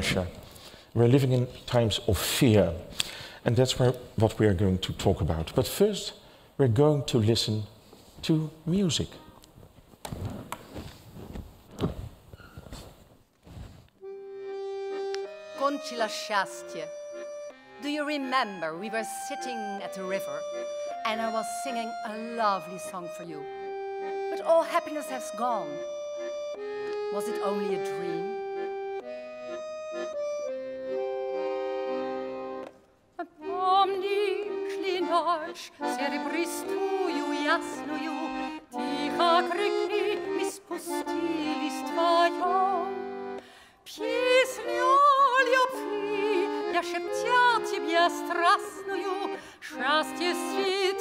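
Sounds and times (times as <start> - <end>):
rustling: 9.4 - 14.1
accordion playing: 14.0 - 51.0
woman singing with vibrato: 33.2 - 43.1, 43.9 - 51.0.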